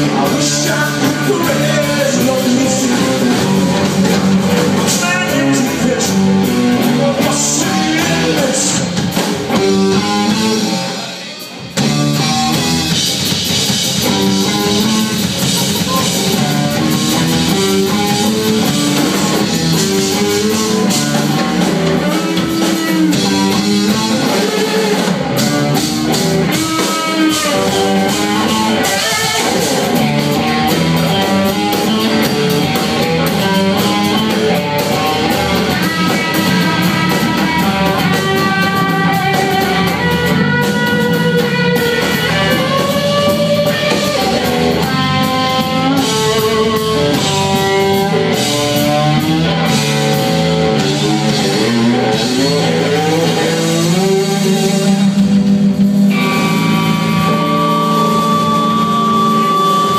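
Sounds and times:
drum kit: 0.0 - 59.9
electric bass: 0.0 - 59.9
electric guitar lead: 0.0 - 59.9.

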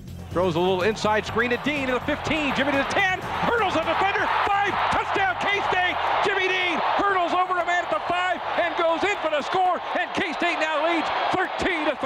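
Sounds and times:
man commentating excitedly: 0.3 - 12.0
crowd noise: 0.8 - 12.0.

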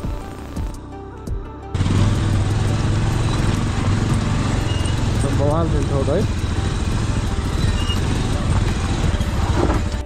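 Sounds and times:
soft background music: 0.0 - 10.0
motorcycle engine running: 1.7 - 10.0.

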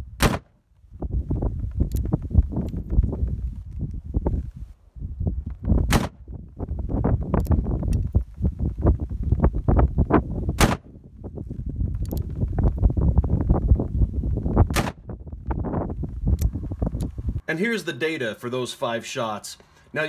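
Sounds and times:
revolver gunshots: 0.2 - 0.5, 5.9 - 6.2, 10.6 - 10.9.

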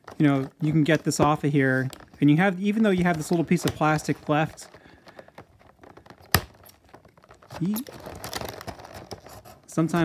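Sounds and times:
plastic packaging crinkling: 0.0 - 10.0
knife cutting plastic: 3.0 - 10.0.

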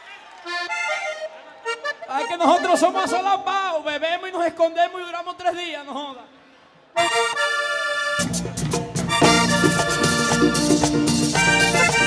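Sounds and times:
button accordion playing: 0.4 - 3.5, 7.0 - 12.0.

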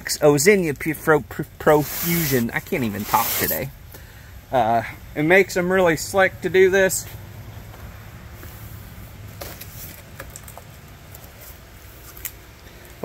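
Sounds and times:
low steady rumble: 0.0 - 13.0
cardboard rustling: 1.7 - 3.7.

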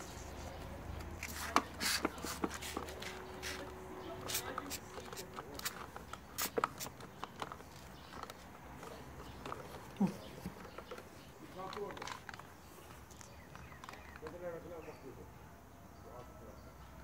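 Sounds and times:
plastic tray clicking and crinkling: 4.9 - 12.5.

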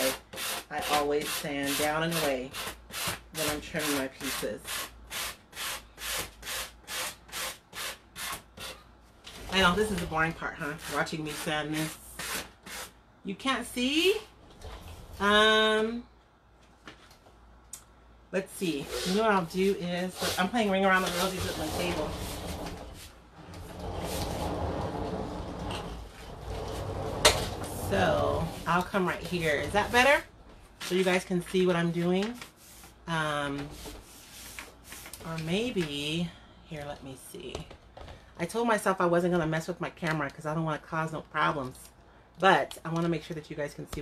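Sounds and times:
sanding block scraping wood: 18.8 - 19.3, 20.2 - 22.6.

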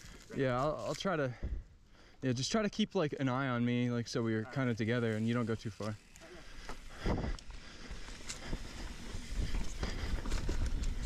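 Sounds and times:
wind: 0.0 - 11.0
bike tyre rumble: 4.5 - 11.0
bike ticks and rattles: 4.6 - 11.0.

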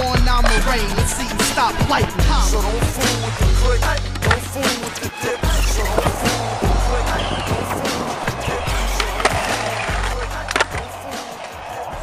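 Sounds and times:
hip-hop music with deep bass: 0.0 - 12.0
skateboard wheels rolling on concrete: 0.0 - 12.0
skateboard clacks: 2.8 - 12.0.

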